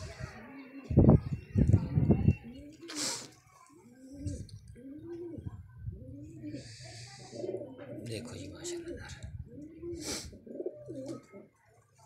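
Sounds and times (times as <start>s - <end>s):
pigeons cooing: 3.8s - 11.6s.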